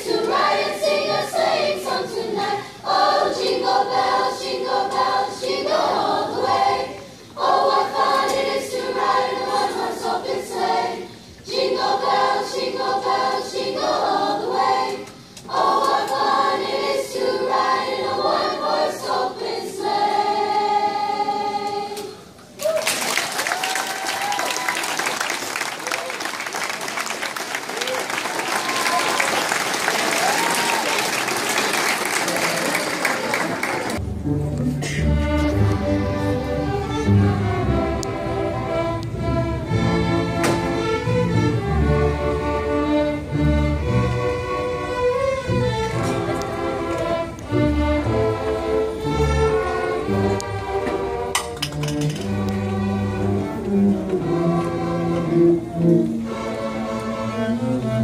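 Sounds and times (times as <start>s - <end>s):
choir singing: 0.0s - 22.4s, 34.8s - 51.3s, 52.0s - 58.0s
audience applause: 22.6s - 34.0s.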